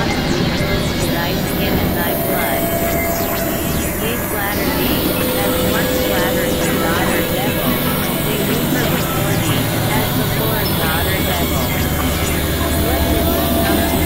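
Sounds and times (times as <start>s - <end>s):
electronic drone music: 0.0s - 14.0s
warbling pitch glides: 0.0s - 14.0s.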